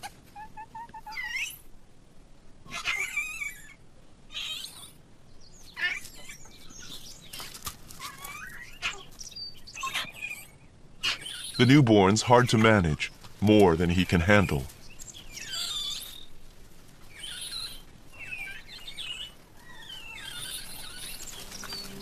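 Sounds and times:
monkeys high-pitched calls: 0:00.0 - 0:01.7, 0:02.6 - 0:05.0, 0:08.0 - 0:11.8, 0:15.3 - 0:16.4, 0:17.1 - 0:22.0.

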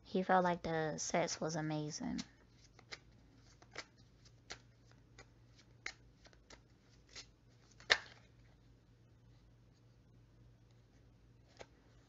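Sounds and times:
cards being shuffled: 0:02.1 - 0:08.6, 0:10.6 - 0:12.0.

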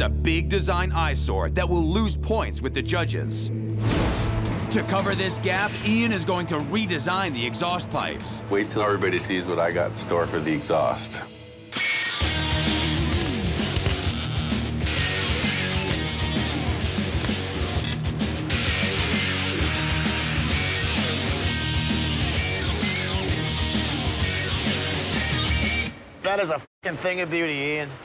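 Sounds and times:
background music: 0:00.0 - 0:26.2
angle grinder cutting steel: 0:11.8 - 0:16.3, 0:17.1 - 0:25.0.

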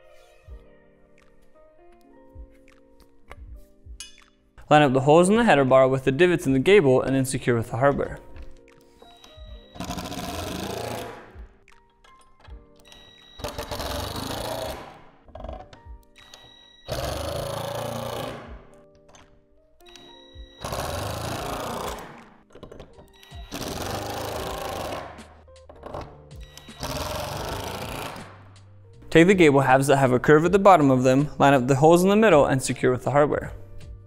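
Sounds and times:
soft background music: 0:00.0 - 0:34.0
power driver driving screws: 0:09.0 - 0:11.5, 0:12.1 - 0:28.4.

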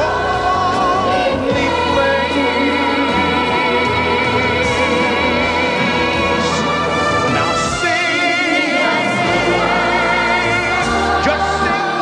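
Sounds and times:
children's choir singing: 0:00.0 - 0:12.0
musical accompaniment: 0:00.0 - 0:12.0.

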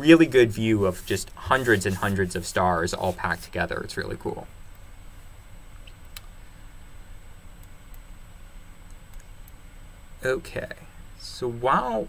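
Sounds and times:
steady low hum: 0:00.0 - 0:12.0
computer mouse clicks: 0:08.8 - 0:09.6.

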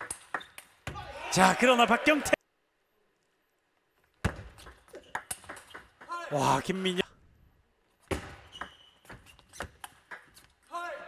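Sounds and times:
ping pong ball hitting rackets: 0:04.3 - 0:06.1.

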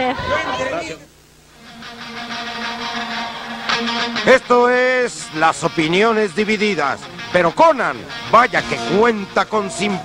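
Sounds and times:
voices: 0:00.0 - 0:01.2, 0:04.3 - 0:10.0.

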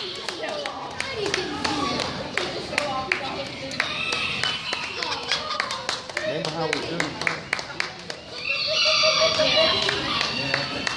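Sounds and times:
sharp claps: 0:00.0 - 0:08.4
people talking: 0:00.0 - 0:10.9.

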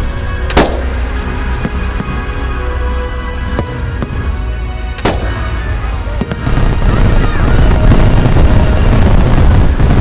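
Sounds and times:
fireworks bangs: 0:00.5 - 0:02.4, 0:05.0 - 0:10.0
low rumble: 0:00.5 - 0:10.0.

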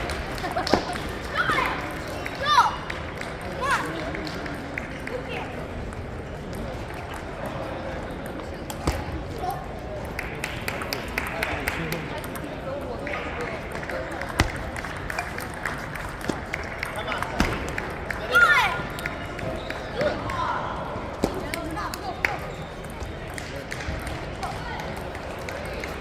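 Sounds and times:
hubbub of voices in a hall: 0:00.0 - 0:26.0.

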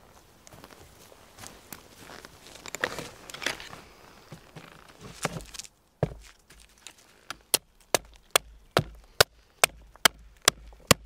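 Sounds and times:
axe chopping wood: 0:05.2 - 0:06.3, 0:07.4 - 0:11.0.

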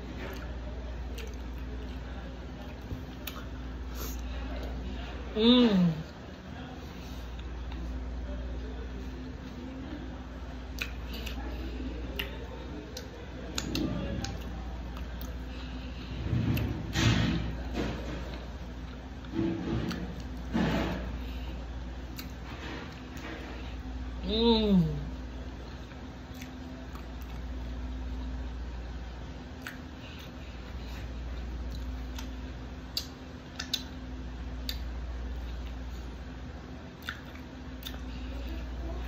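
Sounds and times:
steady low hum: 0:00.0 - 0:39.0
mouth chewing clicks and smacks: 0:01.1 - 0:02.0, 0:10.7 - 0:11.5, 0:12.1 - 0:15.4, 0:22.0 - 0:22.4, 0:25.8 - 0:27.5, 0:29.5 - 0:30.4, 0:31.3 - 0:34.0, 0:34.6 - 0:35.8, 0:37.0 - 0:38.1.

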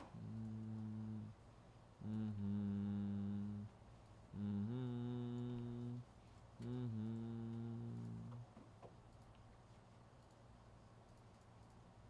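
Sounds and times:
man humming: 0:00.0 - 0:01.4, 0:02.0 - 0:08.5.

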